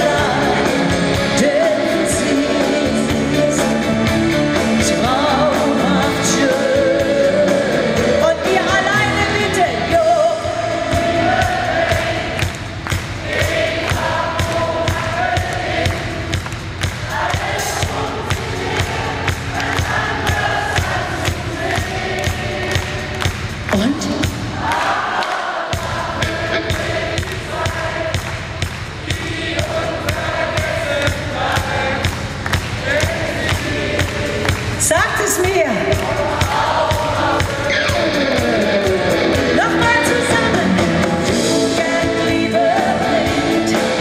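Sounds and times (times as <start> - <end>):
woman singing lead: 0.0 - 11.7, 34.8 - 44.0
live pop band playing: 0.0 - 24.7, 25.8 - 44.0
crowd singing along: 0.0 - 44.0.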